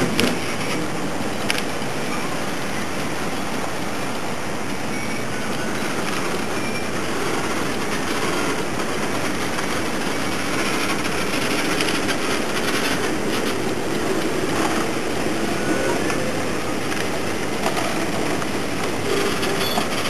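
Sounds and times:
train wheels clicking over track: 0.0s - 20.0s.

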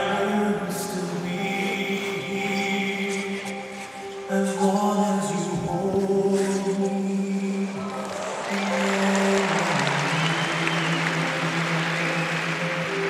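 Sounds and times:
slow music over sound system: 0.0s - 13.0s
audience applause: 7.8s - 13.0s.

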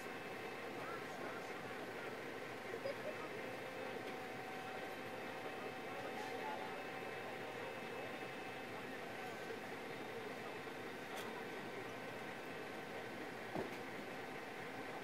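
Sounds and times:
faint indistinct voices: 0.0s - 15.0s.

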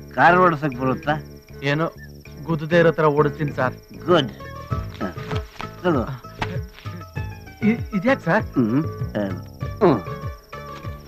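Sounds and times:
crickets chirping: 0.0s - 11.0s
men speaking: 0.1s - 10.3s.

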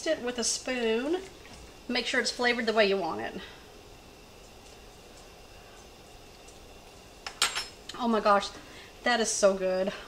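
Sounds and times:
kitchen room tone: 0.0s - 10.0s.

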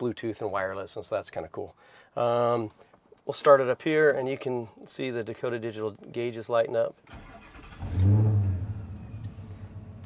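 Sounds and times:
car engine starting and idling: 7.1s - 10.0s.

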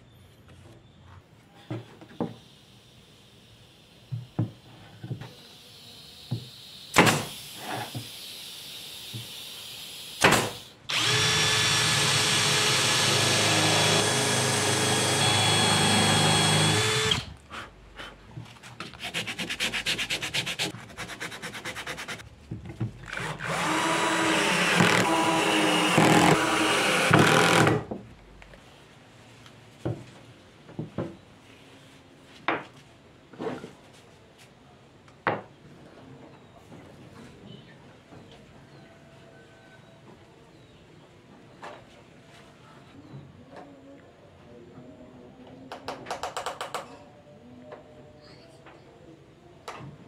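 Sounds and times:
electric drill whining: 5.3s - 17.4s, 23.2s - 27.8s.

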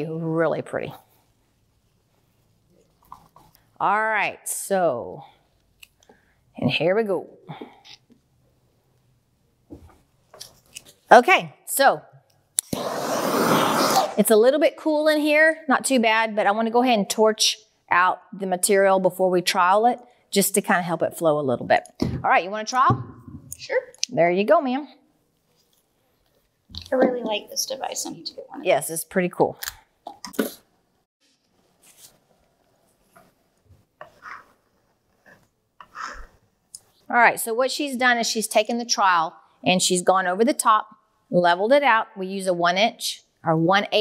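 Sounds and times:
torch flame hissing: 12.7s - 14.2s
trowel scraping wet epoxy: 12.7s - 14.2s.

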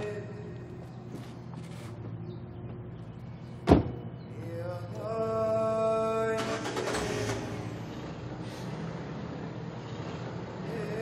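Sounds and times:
car engine low rumble: 0.0s - 11.0s.

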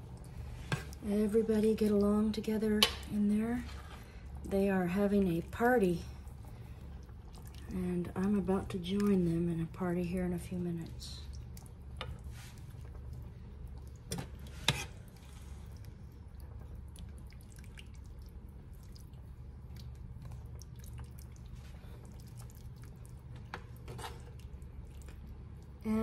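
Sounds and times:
steady low hum: 0.0s - 26.0s
spoon stirring wet stew: 11.2s - 25.4s.

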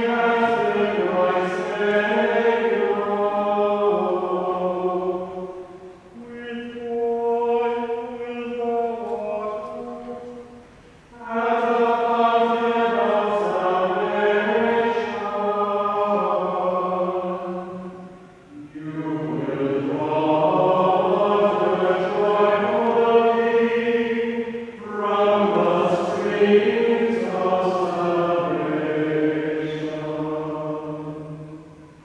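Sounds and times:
voices singing slow church chant: 0.0s - 32.0s.

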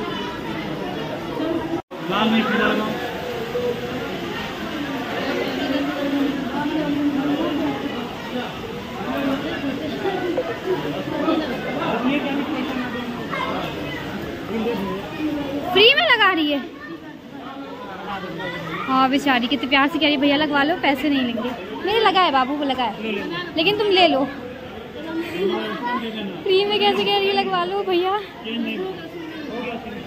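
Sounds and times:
people talking over one another: 0.0s - 30.0s.

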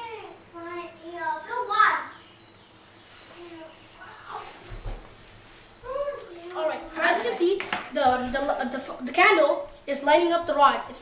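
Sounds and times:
children talking indistinctly: 0.0s - 5.0s, 5.7s - 11.0s.

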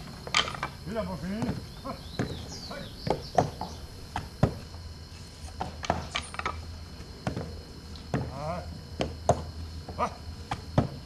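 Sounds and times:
sharp wooden knocks: 2.2s - 4.6s.

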